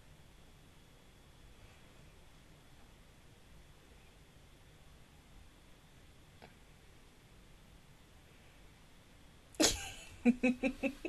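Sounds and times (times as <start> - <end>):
woman laughing explosively: 9.6 - 11.0.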